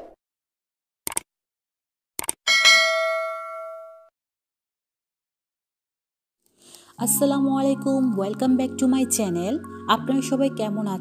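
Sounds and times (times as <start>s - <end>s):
quick clicks: 1.1s - 1.3s, 2.2s - 2.4s
bright bell ding: 2.5s - 4.1s.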